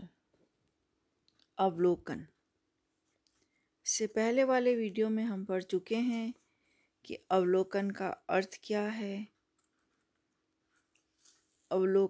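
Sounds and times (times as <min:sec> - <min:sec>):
person speaking: 0:01.3 - 0:02.6, 0:03.2 - 0:12.0.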